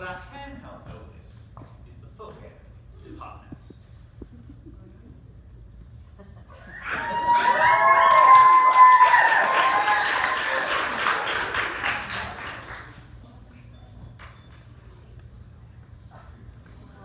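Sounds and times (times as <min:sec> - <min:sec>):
high whoops: 0:06.6 - 0:11.0
audience clapping and cheering: 0:06.8 - 0:13.1.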